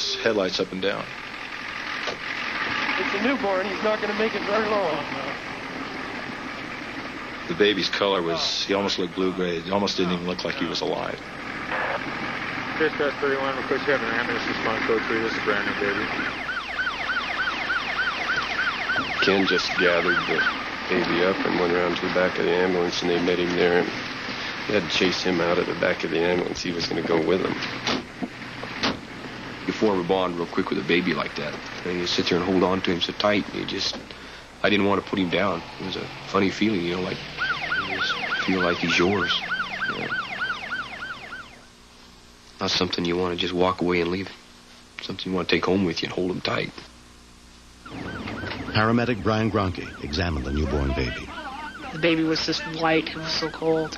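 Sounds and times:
ambulance siren yelp: 0:11.7 - 0:12.2, 0:13.9 - 0:23.6, 0:35.4 - 0:41.7, 0:47.8 - 0:53.9.

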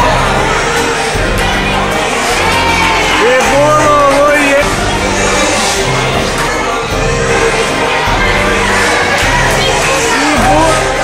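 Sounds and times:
background music: 0:00.0 - 0:11.0
children cheering and shouting: 0:00.0 - 0:11.0.

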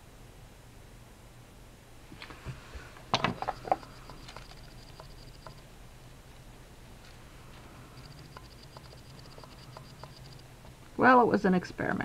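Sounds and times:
faint high whine: 0:00.0 - 0:12.0
low steady hum: 0:00.0 - 0:12.0.

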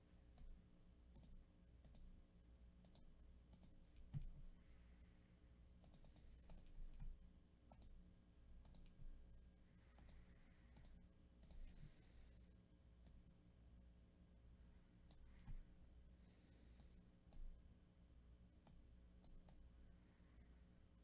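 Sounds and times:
faint mouse clicks: 0:00.3 - 0:02.2, 0:02.8 - 0:04.5, 0:05.8 - 0:08.0, 0:08.6 - 0:09.2, 0:09.8 - 0:12.2, 0:13.0 - 0:13.3, 0:15.0 - 0:15.8, 0:16.6 - 0:17.6, 0:18.6 - 0:19.7.

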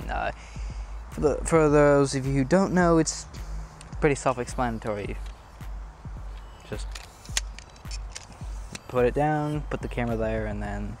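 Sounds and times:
tripod clicks and knocks: 0:03.7 - 0:04.0, 0:05.1 - 0:05.5, 0:06.2 - 0:09.0
plastic leg clamp being worked: 0:06.3 - 0:08.9.

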